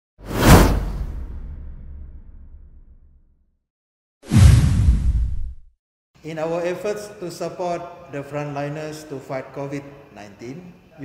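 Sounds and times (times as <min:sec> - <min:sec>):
whoosh with low boom: 0:00.3 - 0:03.2, 0:04.3 - 0:05.7.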